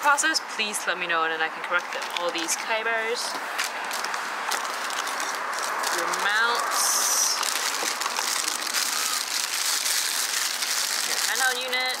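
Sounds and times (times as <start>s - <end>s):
plastic bags crinkling: 3.6s - 12.0s.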